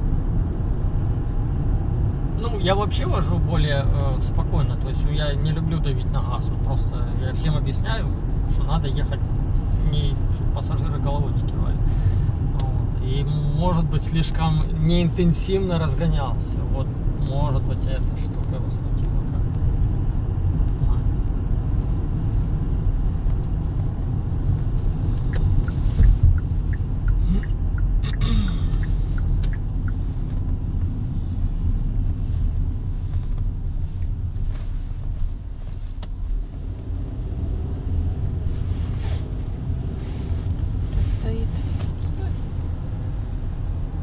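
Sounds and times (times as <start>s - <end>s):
car engine and tyre rumble: 0.0s - 44.0s.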